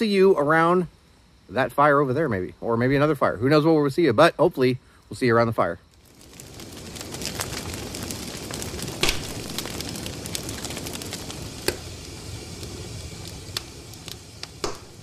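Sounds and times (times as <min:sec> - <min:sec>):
wood fire crackling and popping: 0:05.0 - 0:15.0.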